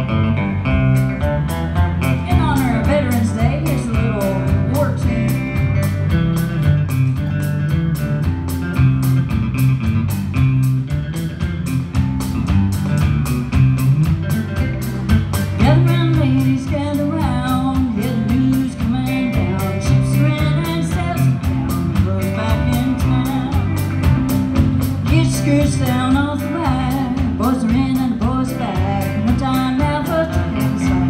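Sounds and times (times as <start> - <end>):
guitar lead line bending: 0.0 - 31.0
live rock band playing: 0.0 - 31.0.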